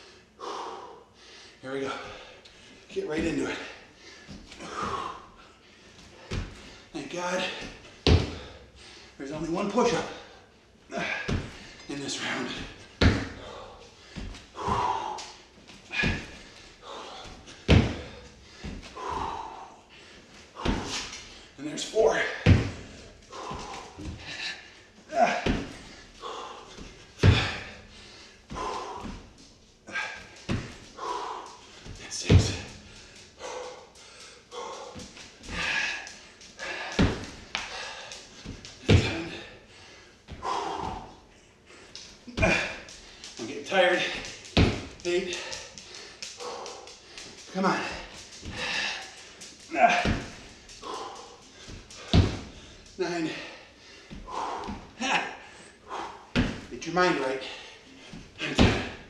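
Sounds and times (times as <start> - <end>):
hard breathing: 0.0 - 59.0
thumps on exercise mat: 7.4 - 8.6, 12.5 - 15.1, 17.4 - 19.4, 20.6 - 21.2, 22.2 - 24.4, 25.2 - 25.9, 26.8 - 27.8, 30.0 - 30.8, 31.8 - 32.9, 36.6 - 39.5, 42.3 - 43.3, 43.9 - 45.7, 49.7 - 52.7, 56.3 - 56.7, 58.1 - 59.0.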